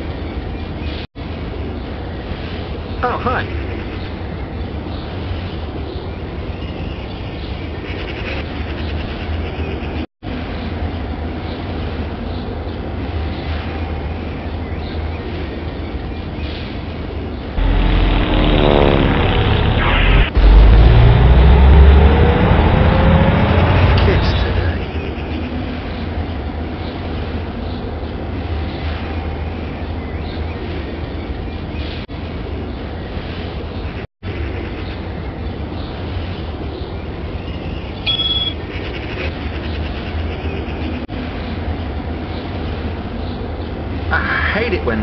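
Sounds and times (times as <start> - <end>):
street traffic: 0.0 - 45.0
loud low rumble: 17.5 - 25.1
falling whistle: 38.1 - 38.6.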